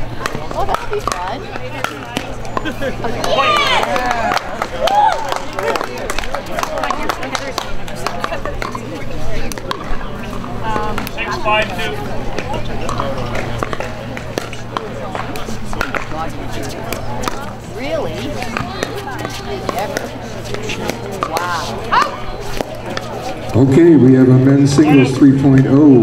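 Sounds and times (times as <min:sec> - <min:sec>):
voices chatting: 0:00.0 - 0:26.0
paddles hitting balls: 0:00.1 - 0:11.2, 0:12.4 - 0:23.3.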